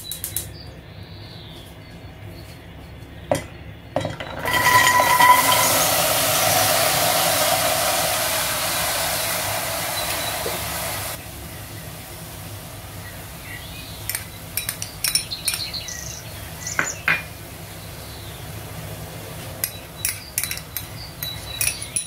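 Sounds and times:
chickpeas rattling into metal pot: 4.1 - 7.0
light clinks: 14.1 - 15.8, 19.6 - 22.0.

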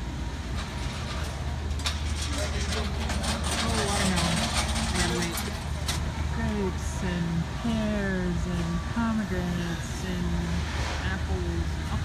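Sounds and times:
indistinct voices of shoppers: 0.7 - 12.0.

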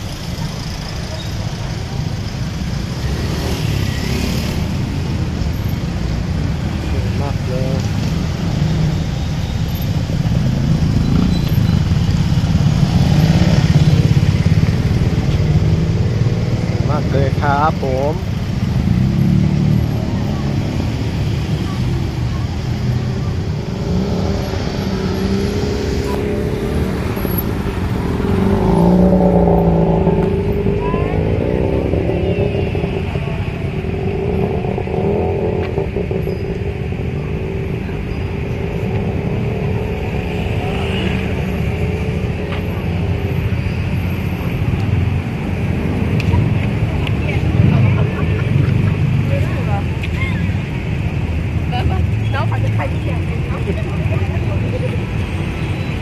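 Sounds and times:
motorcycles and cars rumbling: 0.0 - 56.0
people talking: 19.9 - 23.8, 30.5 - 35.0, 46.2 - 50.8, 51.6 - 55.3.

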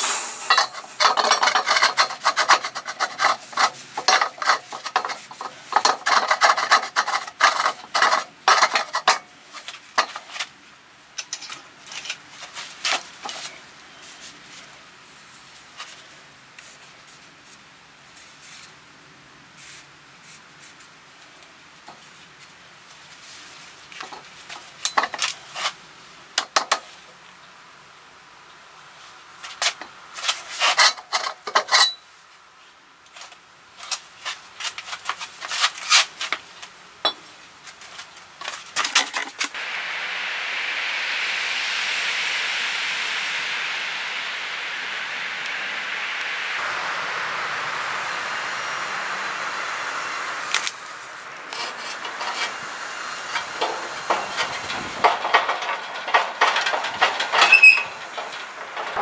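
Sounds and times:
steady hiss: 0.0 - 59.0.

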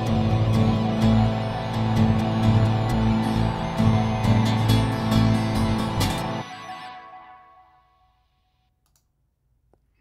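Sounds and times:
music playback: 0.0 - 8.6.

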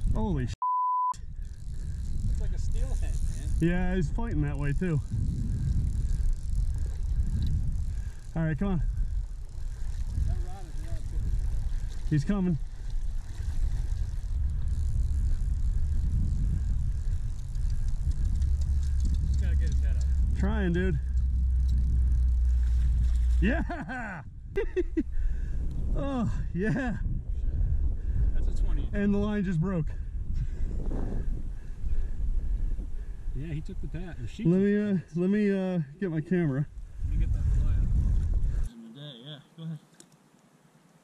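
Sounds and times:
wind: 0.0 - 41.0
censor bleep tone: 0.6 - 1.2
river water: 9.2 - 15.6
faint voice: 38.7 - 39.8.

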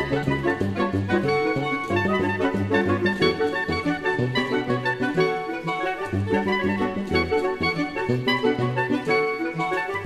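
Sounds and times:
low saxophone-like lines: 0.0 - 10.0
soprano saxophone playing: 0.0 - 10.0.

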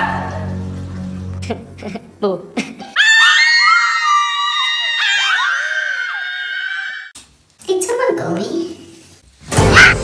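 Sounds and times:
people screaming in fright: 3.0 - 7.2.

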